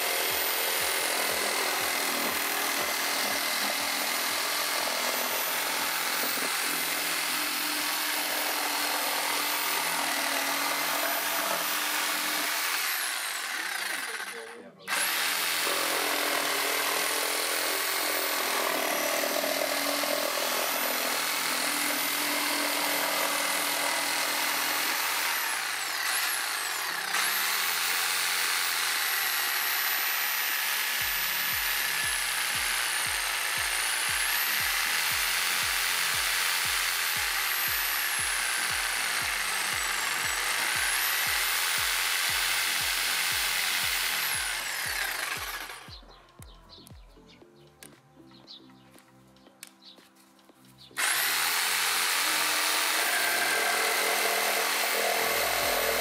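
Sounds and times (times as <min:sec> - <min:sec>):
electric jigsaw cutting wood: 0:00.0 - 0:46.0, 0:51.0 - 0:56.0
background music with beat: 0:31.0 - 0:44.6, 0:45.8 - 0:51.0.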